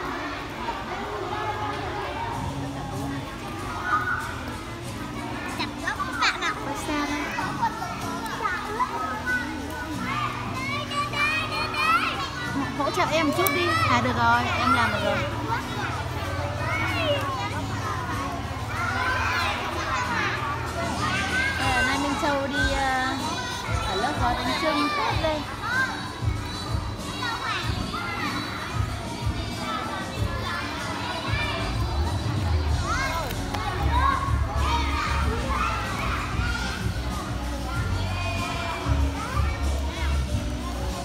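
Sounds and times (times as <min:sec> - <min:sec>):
young children chattering: 0:00.0 - 0:41.0.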